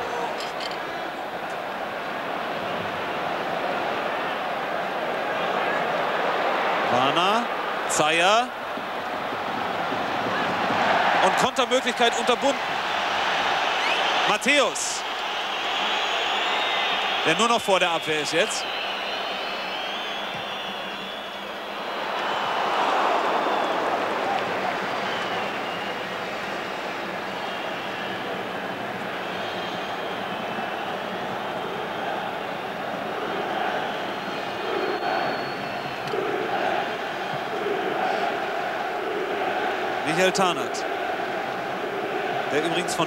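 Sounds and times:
stadium crowd roar: 0.0s - 43.0s
crowd chanting: 29.4s - 43.0s.

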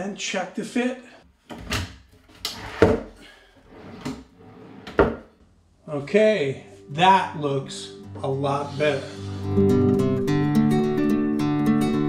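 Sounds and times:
drawer sliding on metal slides: 2.4s - 3.0s, 3.6s - 5.3s
drawer knocking shut: 4.8s - 5.3s.

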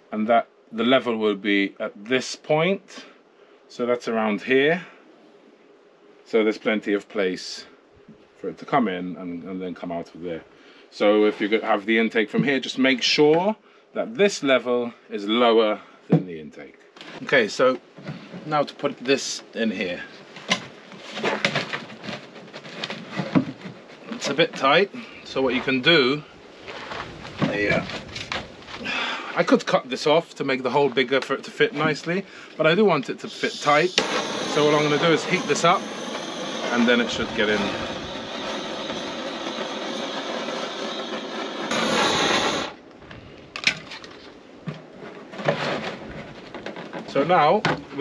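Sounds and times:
rubber and plastic scraping: 20.2s - 24.8s, 26.6s - 28.9s, 40.4s - 48.0s
blowtorch hissing: 33.2s - 42.8s.

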